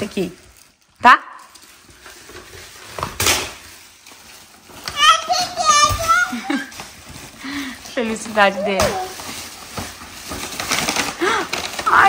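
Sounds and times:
toddler babbling: 4.9s - 6.6s, 8.5s - 9.2s.

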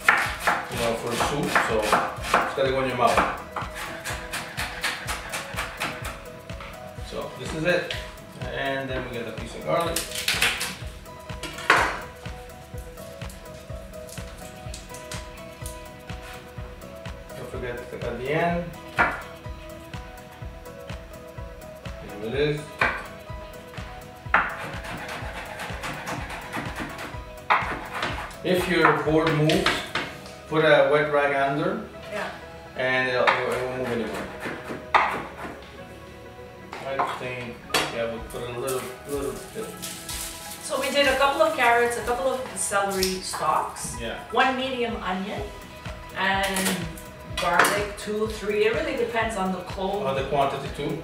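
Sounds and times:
background music: 0.0s - 51.0s
knife knocking on cutting board: 22.8s - 23.1s, 34.4s - 35.6s.

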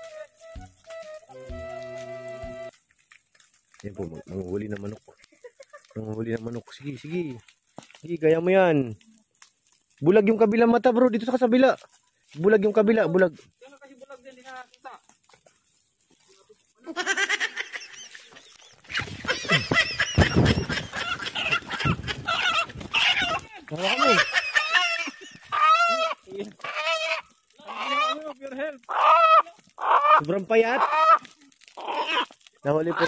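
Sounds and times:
rooster squawking in alarm: 19.4s - 28.2s.

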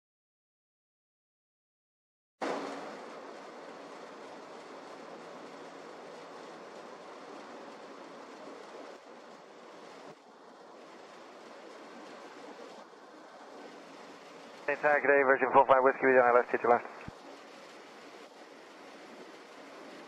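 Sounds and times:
distant jet rumble and hiss: 2.4s - 20.0s.

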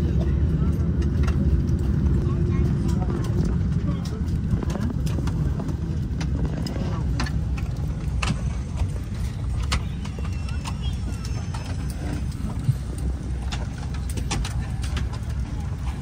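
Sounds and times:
air system low rumble: 0.0s - 16.0s
murmured chatter: 0.0s - 16.0s.

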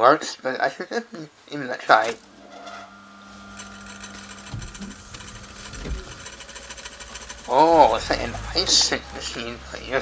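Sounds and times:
machine humming and clattering: 2.0s - 10.0s.

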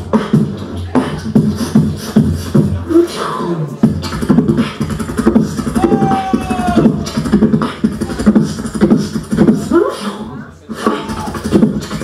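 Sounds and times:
person beatboxing into microphone: 0.0s - 12.0s.

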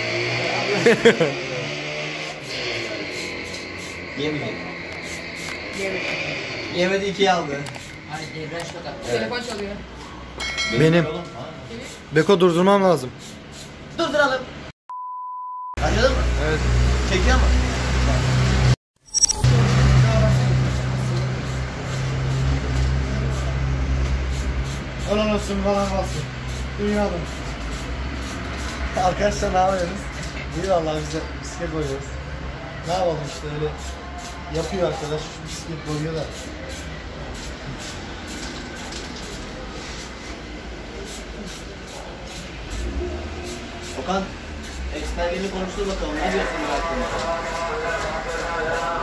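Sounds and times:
spray can hissing: 2.4s - 4.2s, 4.8s - 5.9s, 7.7s - 8.3s, 13.2s - 13.8s, 20.7s - 23.4s, 24.2s - 29.0s, 33.2s - 40.4s, 41.0s - 45.1s.

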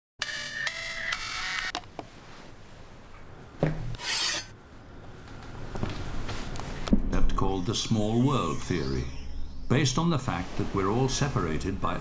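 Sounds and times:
clock radio alarm: 7.3s - 10.0s.

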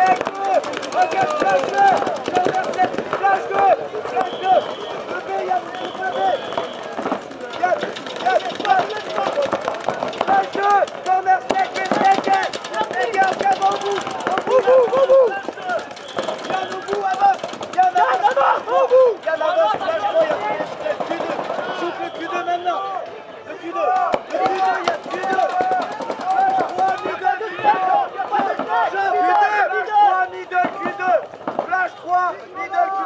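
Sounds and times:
paintball markers firing: 0.0s - 18.6s, 24.0s - 27.2s
people shouting: 0.0s - 33.0s.

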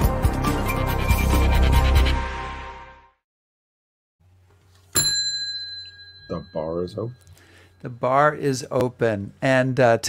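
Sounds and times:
bell ding: 4.9s - 8.0s.

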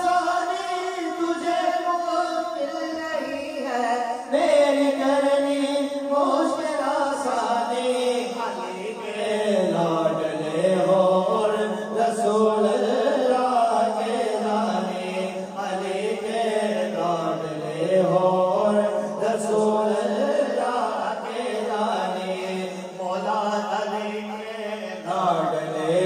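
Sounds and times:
men chanting through microphones: 0.0s - 26.0s.

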